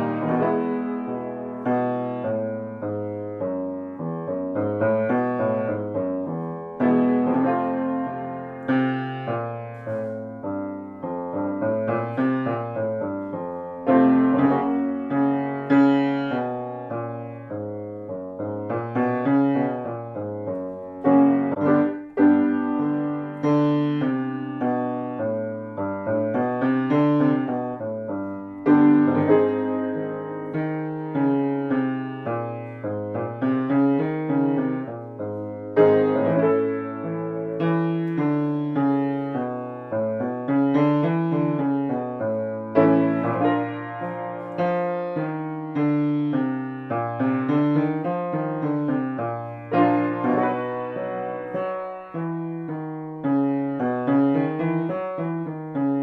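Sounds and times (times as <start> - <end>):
grand piano playing note patterns: 0.0 - 56.0.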